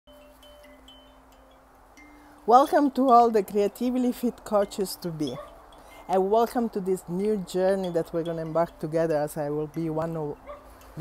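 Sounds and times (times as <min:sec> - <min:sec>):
wind chime ringing: 0:00.1 - 0:11.0.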